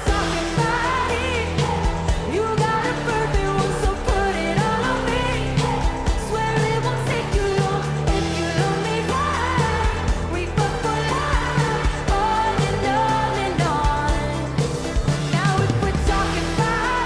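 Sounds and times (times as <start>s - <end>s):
live electropop band: 0.0s - 17.0s
person singing: 0.0s - 17.0s.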